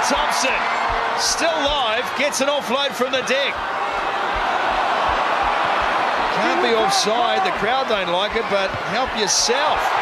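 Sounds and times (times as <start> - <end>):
stadium crowd voices: 0.0 - 10.0
soft low thumps: 3.4 - 6.3.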